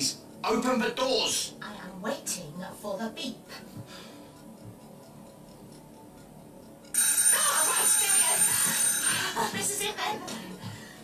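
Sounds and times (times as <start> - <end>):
oven timer alarm ringing: 4.1 - 9.9.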